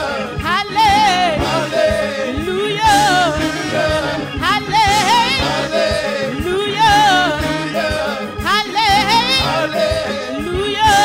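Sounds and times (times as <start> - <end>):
church band playing: 0.0 - 11.0.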